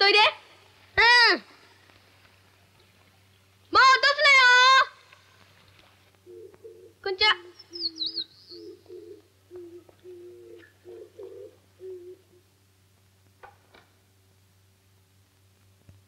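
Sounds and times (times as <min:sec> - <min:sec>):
dove cooing: 0:06.2 - 0:12.5
high wavering bird chirp: 0:06.3 - 0:12.2.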